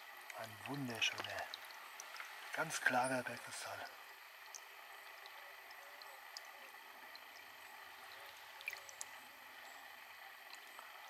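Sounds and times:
water trickling from a pipe: 0.0 - 11.0
small water splashes: 0.2 - 5.4.

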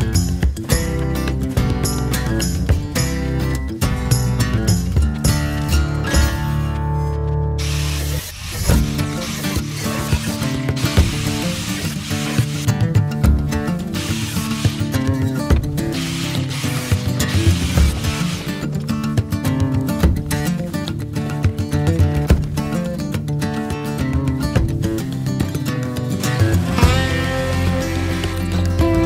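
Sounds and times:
background music: 0.0 - 29.0
jigsaw cutting sheet metal: 7.6 - 12.8, 13.7 - 18.8, 26.1 - 29.0.

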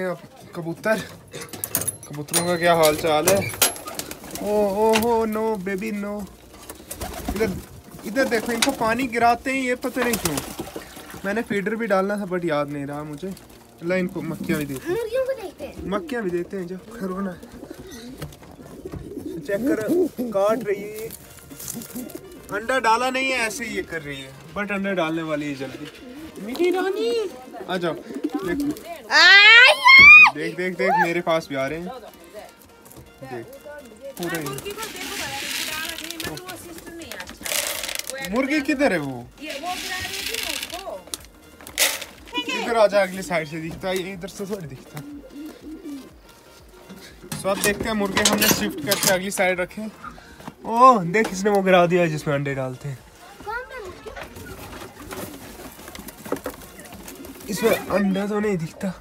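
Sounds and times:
pigeons cooing: 3.4 - 9.2, 14.2 - 24.6, 25.3 - 29.2, 44.0 - 50.7, 54.1 - 59.0.

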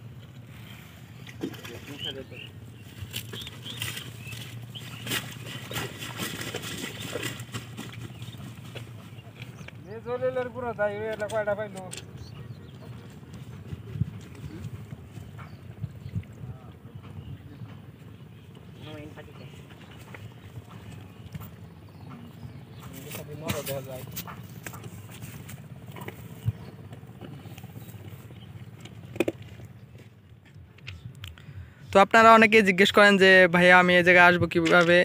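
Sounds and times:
low outdoor rumble: 0.0 - 35.0.

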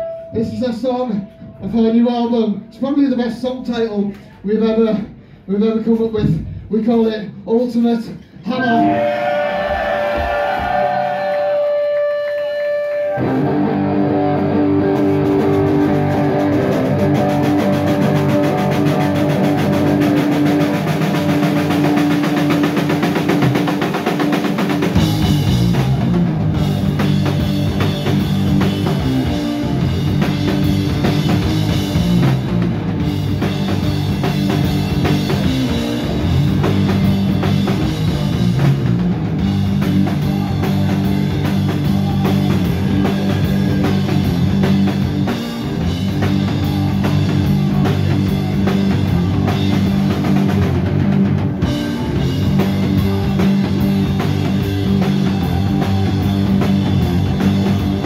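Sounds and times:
heavy rock band playing: 8.5 - 58.0
distorted guitar riff: 8.6 - 58.0.

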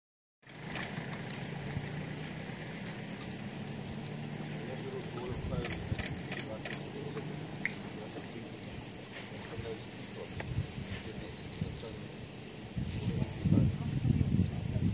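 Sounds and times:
sharp clicks: 0.4 - 1.8, 5.5 - 6.9
vehicle engine idling: 0.4 - 13.8.

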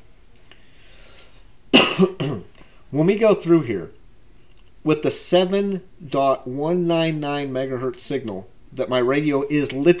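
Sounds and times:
faint room noise: 0.0 - 10.0
man coughing: 1.7 - 2.5.

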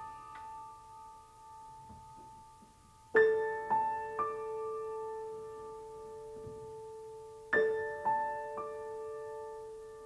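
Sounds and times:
soft slow piano music: 0.0 - 10.0.

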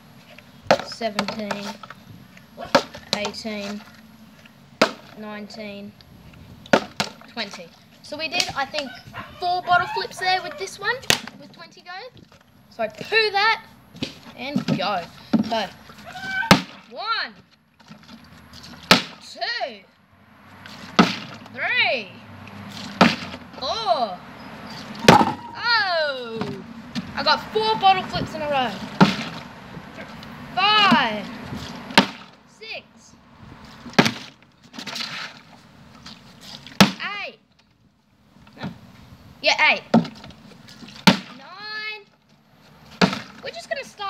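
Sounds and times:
plastic bottle thud on concrete: 4.8 - 5.2, 18.8 - 19.2, 20.9 - 21.4, 22.9 - 23.4, 25.0 - 25.5, 29.0 - 29.4, 31.9 - 32.3, 41.0 - 41.4, 43.0 - 43.4
plastic bottle thudding on concrete: 4.8 - 5.2, 6.7 - 7.3, 11.0 - 11.5, 16.5 - 16.9, 18.8 - 19.3, 20.8 - 21.5, 22.9 - 23.4, 25.0 - 25.5, 28.9 - 29.5, 31.9 - 32.4, 33.9 - 35.2, 36.7 - 37.0, 39.9 - 41.4, 43.0 - 43.4
bottle scuffing: 13.9 - 16.9, 20.5 - 21.5, 33.6 - 36.9.

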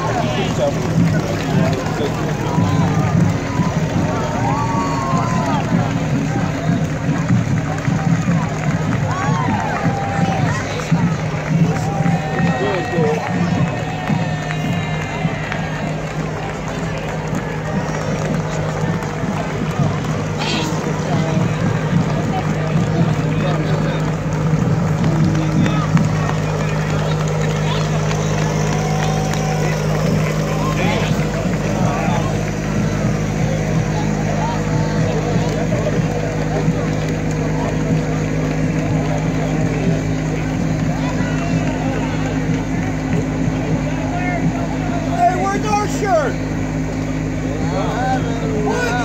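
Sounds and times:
crowd chatter: 0.0 - 49.0
vehicle engine humming: 0.0 - 49.0.

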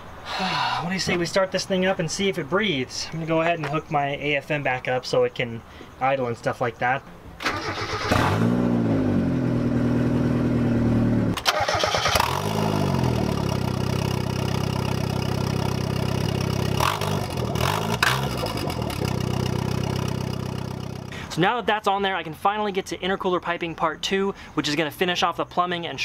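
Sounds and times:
car engine starting and revving: 7.4 - 21.1
engine throttle blips: 7.4 - 21.2
engine idling: 9.5 - 21.3.

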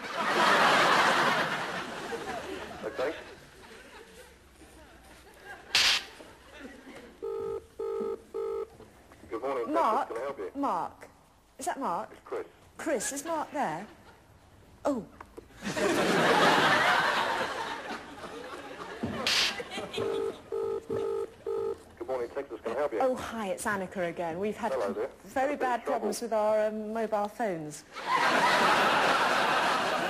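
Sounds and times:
telephone ringing tone beeps: 7.2 - 8.7, 20.0 - 21.8.

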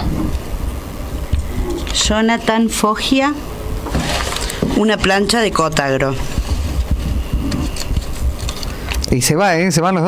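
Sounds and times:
faint plastic bag rustles: 3.8 - 9.0.

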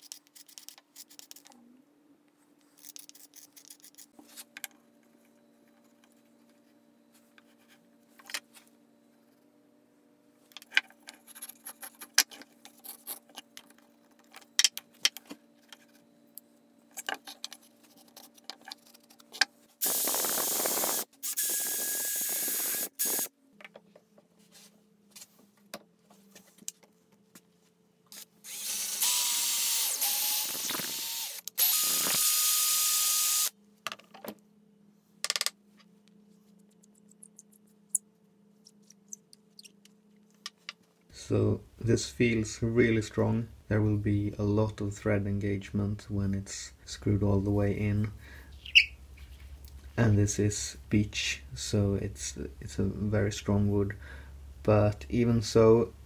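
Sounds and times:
power drill whining: 19.8 - 23.3, 28.5 - 33.5.

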